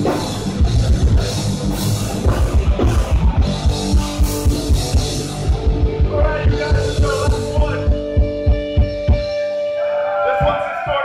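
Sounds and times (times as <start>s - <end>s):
heavy metal band playing: 0.0s - 11.0s.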